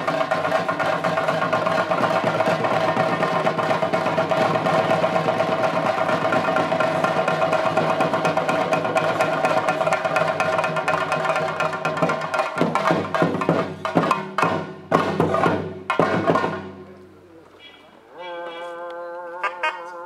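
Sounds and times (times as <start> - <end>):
rapid drumming with sticks: 0.0 - 16.8.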